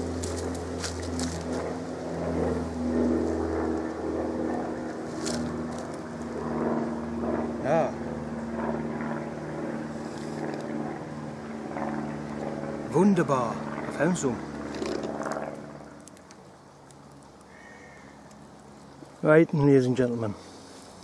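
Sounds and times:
distant engine droning: 0:00.0 - 0:21.0.

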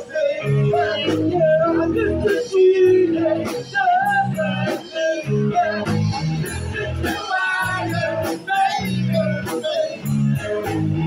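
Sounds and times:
bass: 0:00.0 - 0:11.0
drums: 0:00.0 - 0:11.0
electric guitars: 0:00.0 - 0:11.0.

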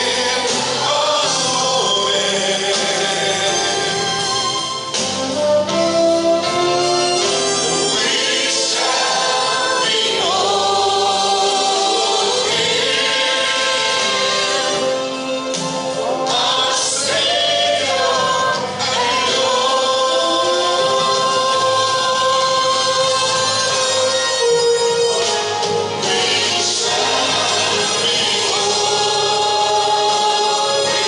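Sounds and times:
congregation singing a hymn: 0:00.0 - 0:04.6, 0:07.2 - 0:31.0.

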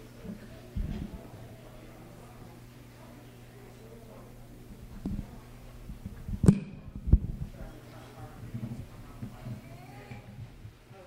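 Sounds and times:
faint indistinct human voices: 0:00.0 - 0:11.0.

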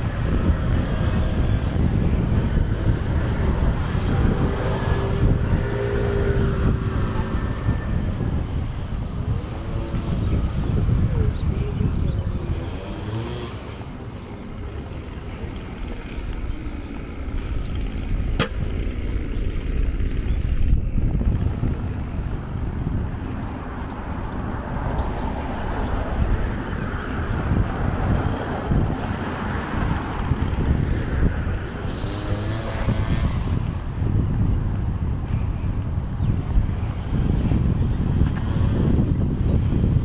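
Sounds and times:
cars passing: 0:00.0 - 0:40.0
wind buffeting microphone: 0:00.0 - 0:40.0.

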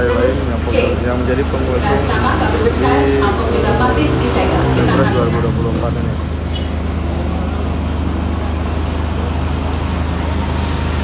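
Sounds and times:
noisy background hum: 0:00.0 - 0:11.0.

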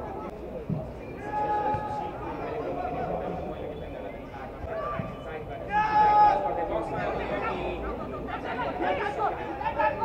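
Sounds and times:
voices chattering and calling out: 0:00.0 - 0:10.0.

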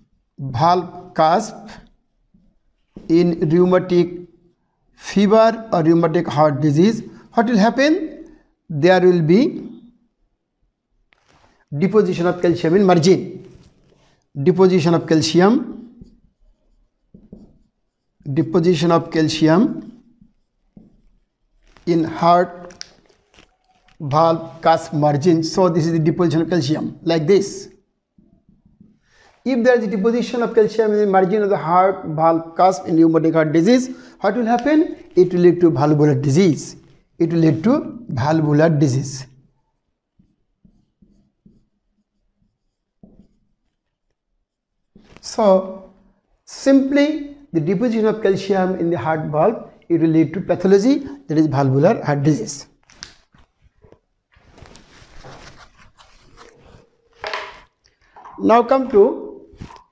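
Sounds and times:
marker writing on a whiteboard: 0:00.0 - 0:04.6, 0:11.1 - 0:59.9.

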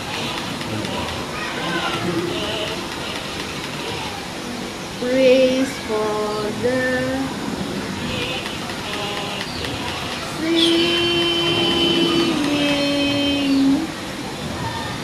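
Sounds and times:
person singing wordless tune: 0:05.0 - 0:07.4, 0:08.8 - 0:14.0.

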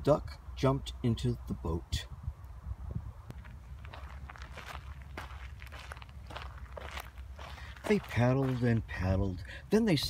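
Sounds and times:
footsteps on dry leaves and twigs: 0:03.3 - 0:09.2.

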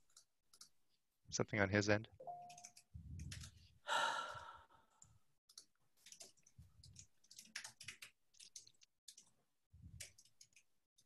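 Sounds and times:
keyboard typing clicks: 0:02.3 - 0:03.6, 0:05.0 - 0:09.3
person sighing: 0:03.9 - 0:04.8.

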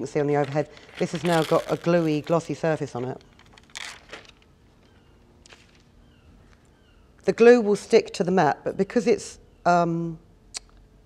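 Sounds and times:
paper rustling and crinkling: 0:00.4 - 0:05.9.

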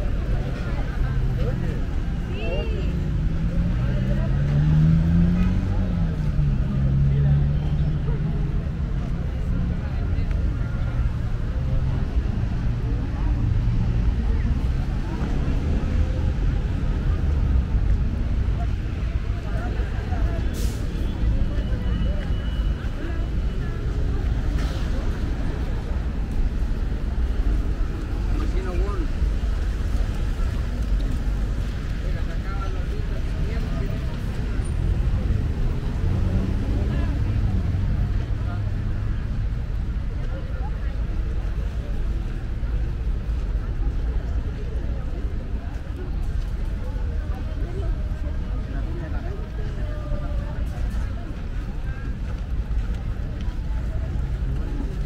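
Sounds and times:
people talking: 0:00.0 - 0:55.0
traffic rumble: 0:00.0 - 0:55.0.

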